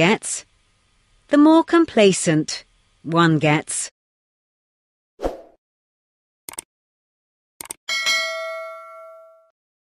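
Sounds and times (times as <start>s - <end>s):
notification bell ding: 7.9s - 9.5s.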